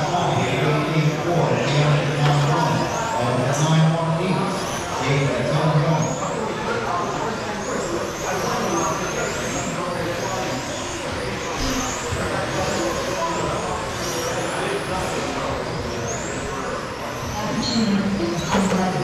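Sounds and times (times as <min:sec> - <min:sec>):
rc cars motor whine: 0:00.0 - 0:19.0.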